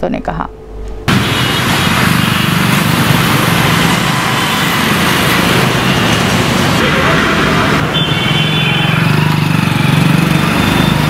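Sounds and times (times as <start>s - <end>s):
loud rushing hiss: 1.1s - 9.1s
small engine running: 1.3s - 11.0s.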